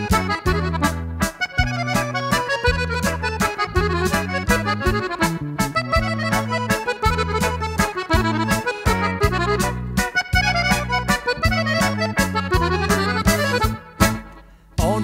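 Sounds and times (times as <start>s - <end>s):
accordion dance music: 0.0s - 15.0s
bass and chord accompaniment: 0.0s - 15.0s.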